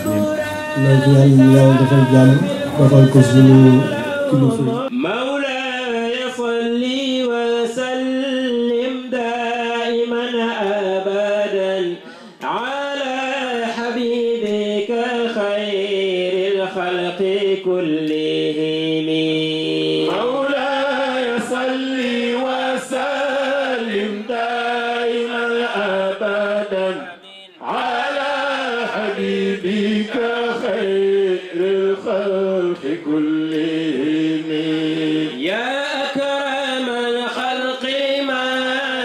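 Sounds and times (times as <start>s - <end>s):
man chanting devotional verses: 0.0s - 39.0s.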